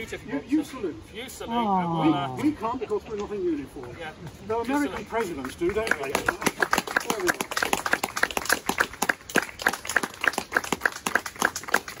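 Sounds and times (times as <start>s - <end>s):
people clapping: 3.8s - 12.0s.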